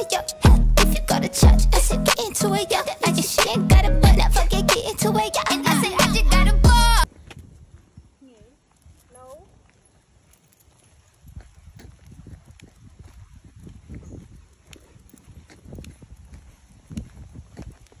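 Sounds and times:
footsteps on pavement: 7.0s - 18.0s.

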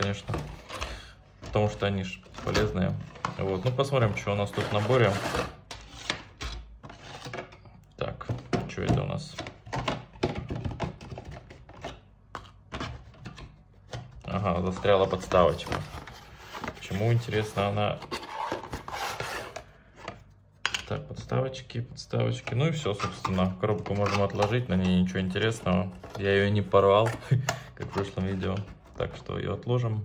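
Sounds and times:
paper and plastic rustling: 0.0s - 6.1s, 12.7s - 20.3s
cardboard box rubbing and scraping: 4.4s - 5.6s, 15.4s - 19.6s.

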